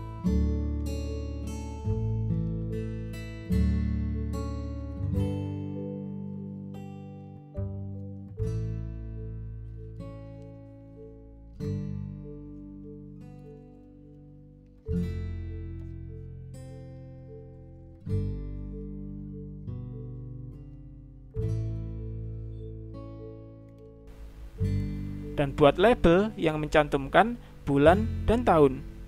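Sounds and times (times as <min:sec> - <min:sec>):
acoustic guitar chords: 0:00.0 - 0:29.0.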